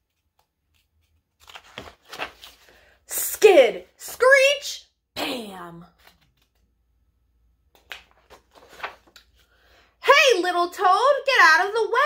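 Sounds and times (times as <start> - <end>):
paper pages flicking and rustling: 0.0 - 2.8, 5.9 - 6.7, 7.7 - 9.4.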